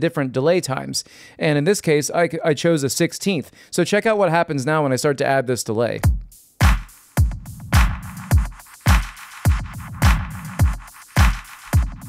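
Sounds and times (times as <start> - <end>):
clicky percussion with echoes: 6.0 - 12.0
electronic kick drum: 6.0 - 12.0.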